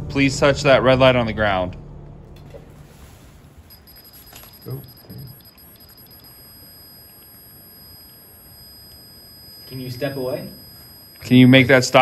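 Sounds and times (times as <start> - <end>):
high-pitched electronic alarm tone: 3.7 - 12.0.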